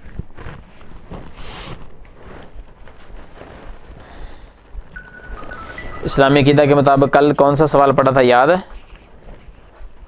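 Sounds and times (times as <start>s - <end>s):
faint stepping tones: 0.0s - 10.0s.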